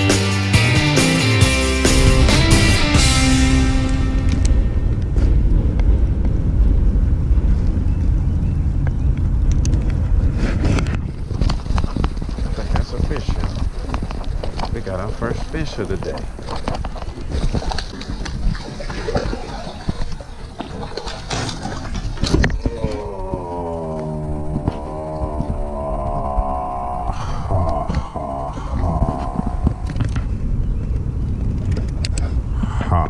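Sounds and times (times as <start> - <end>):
steady low rumble: 1.8 - 33.0
person's voice humming: 22.6 - 29.9.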